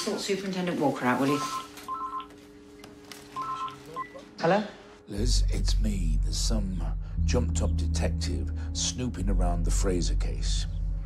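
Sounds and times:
phone ringing two-tone beeps: 0:01.2 - 0:02.4, 0:03.4 - 0:04.2.

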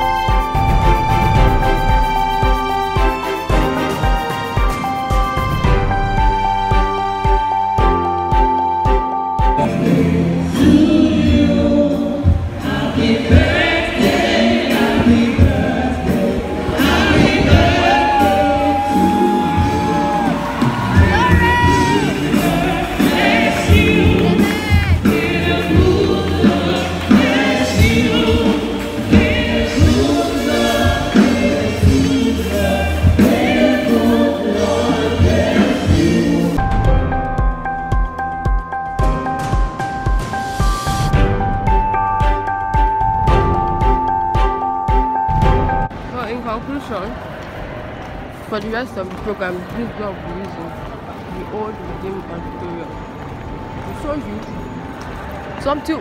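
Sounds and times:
choir singing gospel music: 0:00.0 - 0:36.9
band playing: 0:00.0 - 0:47.1.

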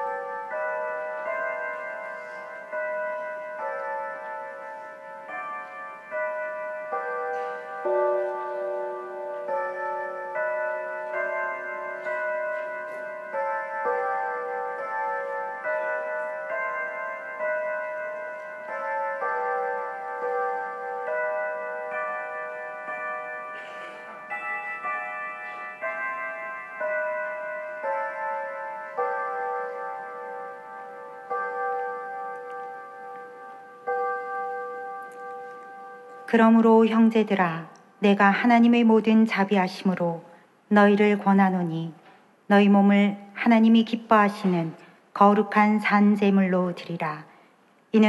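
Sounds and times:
bell-like chimes melody: 0:00.0 - 0:37.0.

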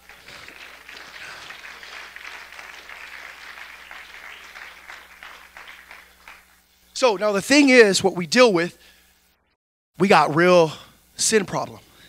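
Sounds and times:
congregation applauding: 0:00.0 - 0:06.7.

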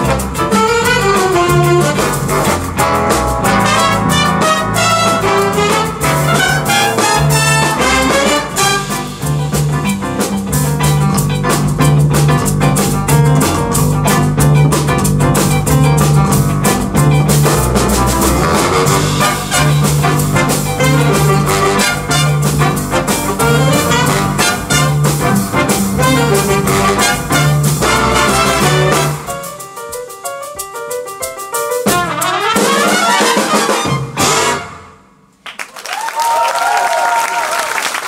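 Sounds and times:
big band playing jazz: 0:00.0 - 0:35.4.

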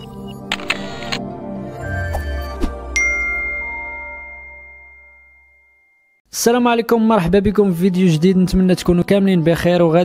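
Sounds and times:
bright chime: 0:03.0 - 0:06.2.

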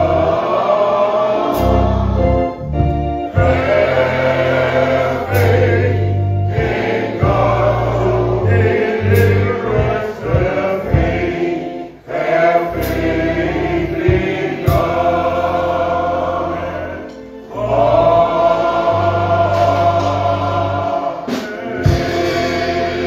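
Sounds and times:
male choir singing: 0:00.0 - 0:23.0
low steady bass: 0:01.6 - 0:11.3.

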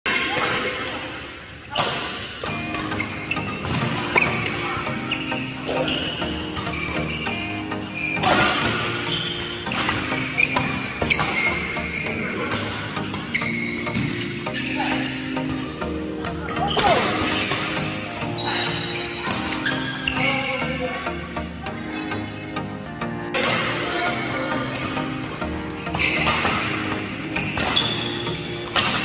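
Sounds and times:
court shoes squeaking: 0:00.1 - 0:29.0
music: 0:00.1 - 0:29.0
racket striking shuttlecock: 0:00.3 - 0:04.6, 0:08.1 - 0:11.8, 0:16.8 - 0:18.0, 0:23.4 - 0:23.9, 0:24.7 - 0:29.0.

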